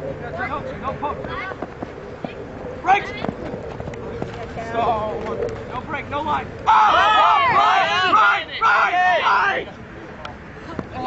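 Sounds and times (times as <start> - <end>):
faint steady hum: 0.0 - 11.0
players shouting: 5.9 - 9.8.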